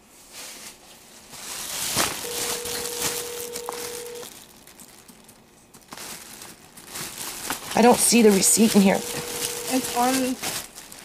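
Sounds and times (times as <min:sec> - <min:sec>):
paper rustling: 0:00.3 - 0:11.0
telephone ringback tone: 0:02.2 - 0:04.3, 0:08.5 - 0:10.4.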